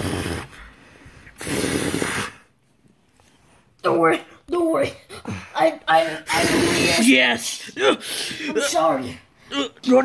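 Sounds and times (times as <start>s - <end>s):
raspy breathy throat noise: 0.0s - 2.6s.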